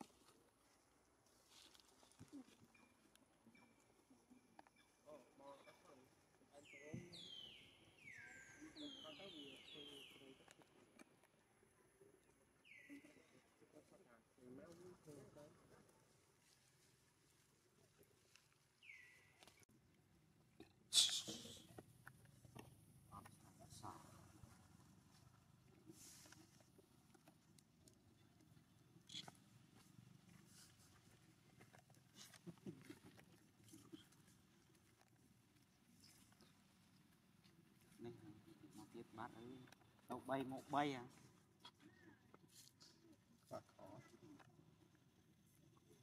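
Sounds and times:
rustling of dry leaves: 0.0s - 2.7s.

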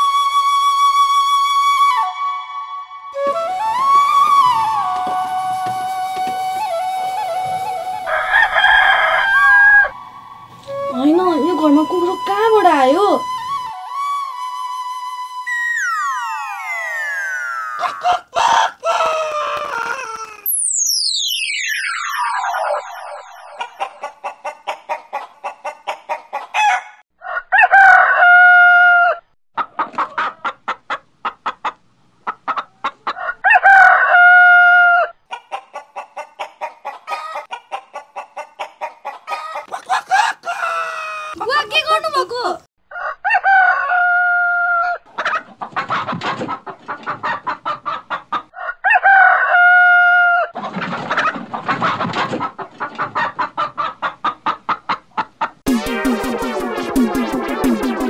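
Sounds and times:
chicken long drawn-out call: 7.4s - 10.1s, 15.5s - 20.5s, 23.5s - 29.2s, 33.1s - 41.4s, 42.9s - 45.0s, 48.5s - 50.5s
chicken clucking: 17.7s - 20.4s, 23.5s - 28.2s, 29.6s - 34.2s, 35.3s - 42.0s, 42.9s - 49.9s, 50.6s - 55.6s.

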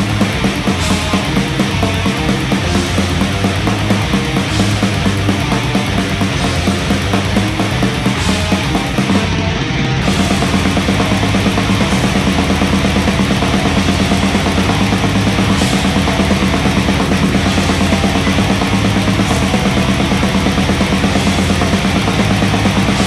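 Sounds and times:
distorted electric guitars: 0.0s - 23.0s
fast steady drumming: 0.0s - 23.0s.

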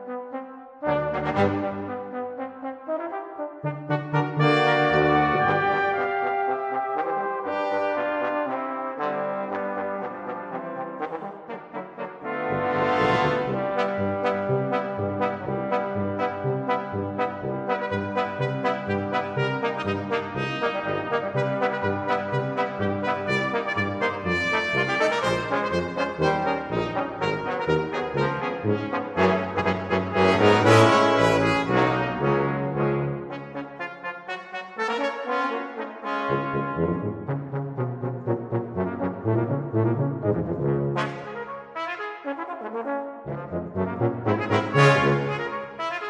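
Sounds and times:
brass band playing: 0.0s - 46.0s.

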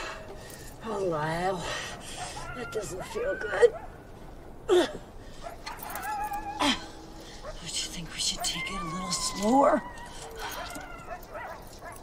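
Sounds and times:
woman speaking: 0.8s - 1.7s, 2.5s - 3.8s, 7.6s - 9.9s
woman whimpering and murmuring: 2.4s - 3.7s, 6.2s - 11.2s.

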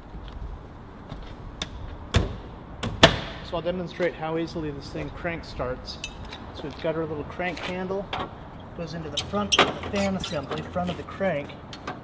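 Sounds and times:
faint handling knocks and clicks: 11.4s - 12.0s.

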